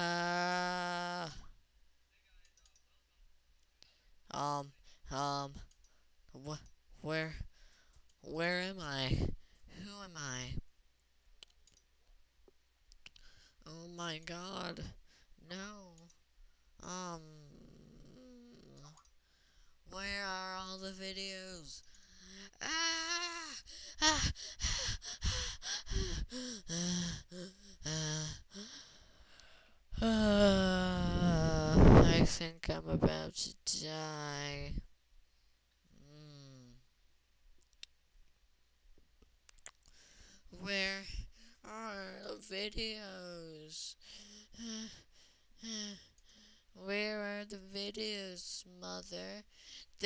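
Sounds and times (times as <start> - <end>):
computer mouse clicks: 2.4 - 2.9, 11.4 - 11.9, 18.7 - 19.2
person gasping and crying out: 22.0 - 29.1.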